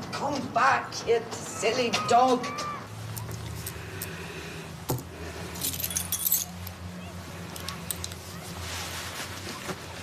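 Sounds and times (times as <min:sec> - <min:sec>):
keys jingling: 0:05.6 - 0:06.7.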